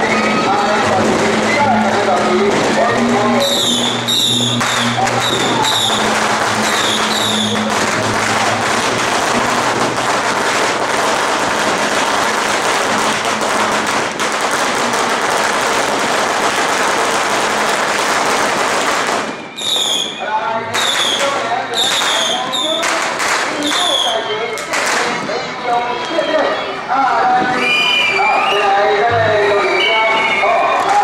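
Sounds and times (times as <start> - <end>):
firecrackers crackling: 0.0 - 26.5, 29.4 - 31.0.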